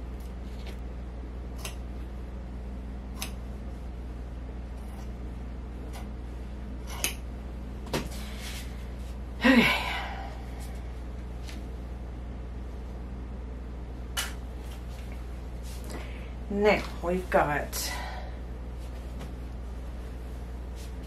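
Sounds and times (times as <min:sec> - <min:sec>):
scissors snipping fabric: 0:01.6 - 0:01.9, 0:03.1 - 0:03.4, 0:06.8 - 0:07.2.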